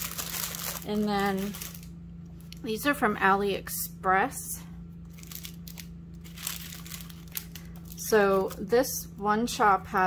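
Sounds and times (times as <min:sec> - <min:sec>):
plastic packaging crinkling: 0:00.0 - 0:02.6, 0:05.1 - 0:08.7
faint steady hum: 0:00.0 - 0:10.0.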